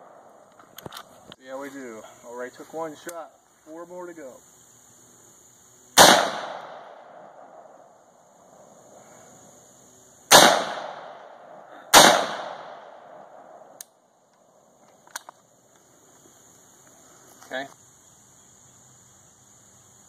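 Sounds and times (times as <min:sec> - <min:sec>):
rifle shots with echo: 0:06.0 - 0:07.8, 0:10.3 - 0:13.6.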